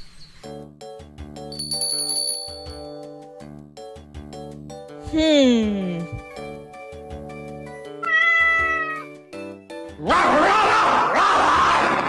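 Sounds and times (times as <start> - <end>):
soft background music: 0.0 - 10.6
cat meowing: 8.0 - 9.2.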